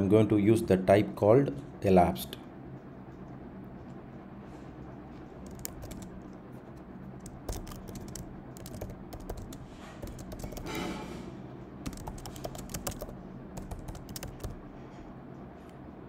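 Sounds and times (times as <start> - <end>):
faint low hum: 0.0 - 16.0
keyboard key clicks: 5.4 - 6.1, 7.2 - 10.7.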